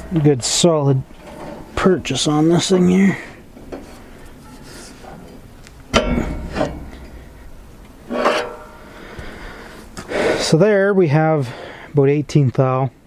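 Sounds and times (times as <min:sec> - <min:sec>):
sharp metal knock: 0:05.9 - 0:09.0.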